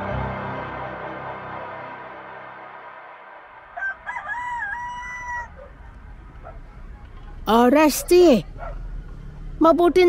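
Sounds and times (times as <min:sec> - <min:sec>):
ambient music: 0:00.0 - 0:04.8
rooster crowing: 0:03.7 - 0:05.8.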